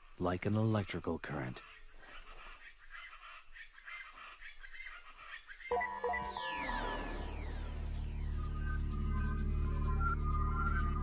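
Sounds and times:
electronic beeps: 5.7 - 11.0
squeaky chirps: 5.7 - 11.0.

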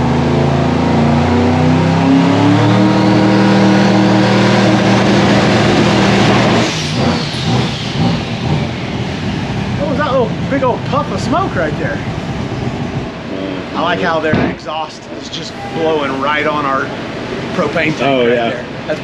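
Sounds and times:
car engine running: 0.0 - 19.0.

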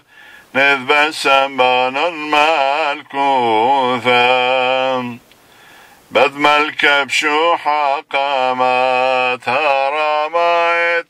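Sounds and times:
man chanting a hymn: 0.0 - 5.2, 6.1 - 11.0.

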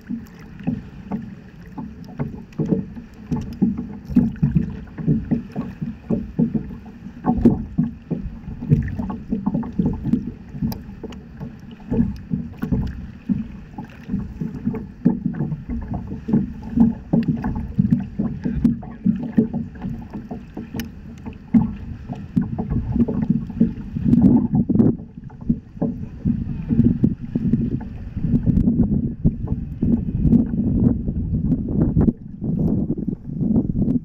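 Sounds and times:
paddle strokes splashing: 0.0 - 31.3
water lapping against paddle board: 0.0 - 34.0.

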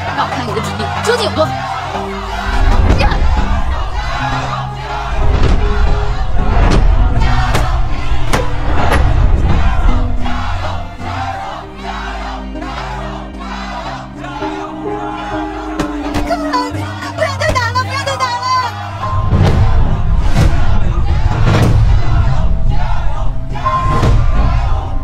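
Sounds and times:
crowd chanting in unison: 0.0 - 25.0
dramatic music with heavy bass: 0.0 - 25.0.

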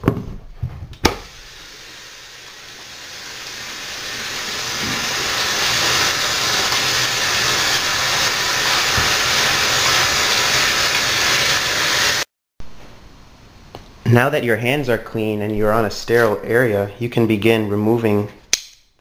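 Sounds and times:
tap water running into sink: 1.1 - 12.0.

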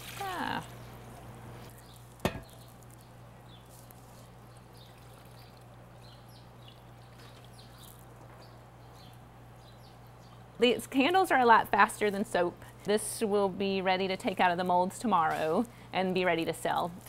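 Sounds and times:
wax trickling with small ticks: 0.0 - 9.2.

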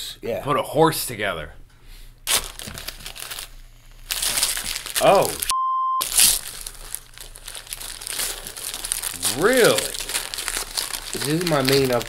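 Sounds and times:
wrapping paper tearing and crinkling: 2.2 - 12.0.

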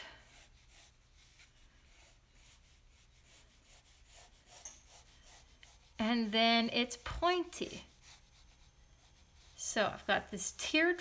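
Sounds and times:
pencil scratching on paper: 0.2 - 10.4.

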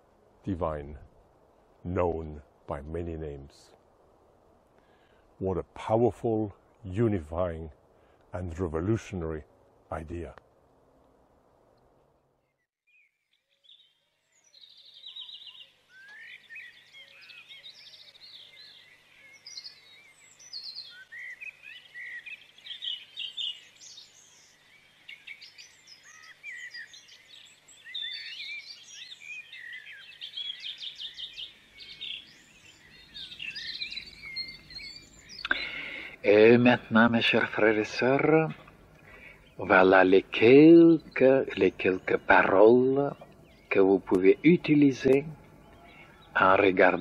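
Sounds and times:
birds chirping and whistling: 12.4 - 47.0.

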